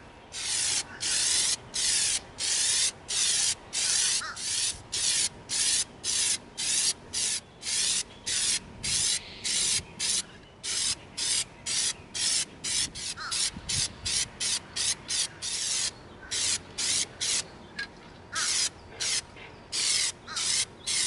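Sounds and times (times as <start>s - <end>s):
spray can hissing in bursts: 0.4s - 17.4s, 18.4s - 19.2s, 19.8s - 21.0s.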